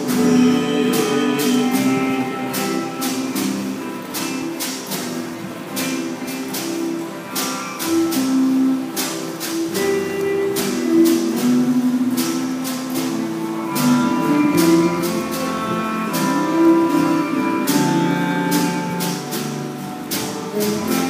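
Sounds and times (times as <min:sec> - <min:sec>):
instrumental band music with guitar: 0:00.0 - 0:21.0.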